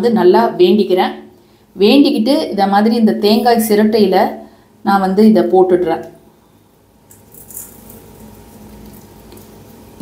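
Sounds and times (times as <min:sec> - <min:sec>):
seeds rattling in coconut shell: 0:07.1 - 0:09.8.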